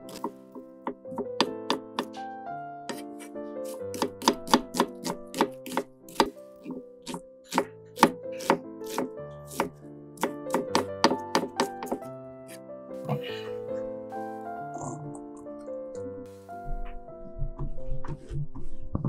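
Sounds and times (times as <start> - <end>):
knife chopping on wooden board: 0.0 - 2.2, 2.9 - 12.1
background music: 0.0 - 19.0.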